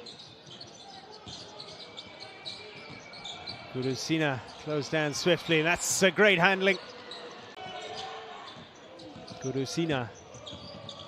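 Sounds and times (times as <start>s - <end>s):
faint basketball court noises: 0.0s - 11.0s.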